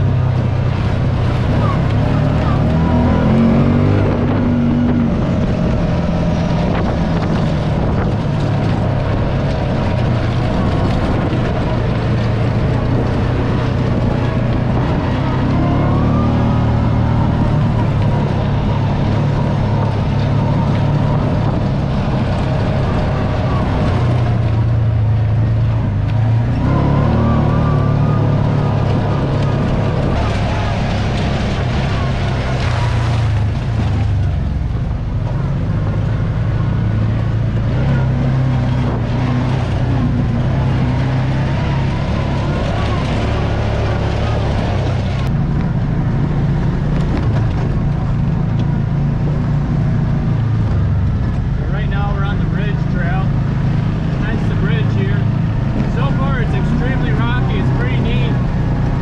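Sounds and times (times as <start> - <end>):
wind noise: 0.0 - 52.0
off-road vehicle engine running: 0.0 - 59.0.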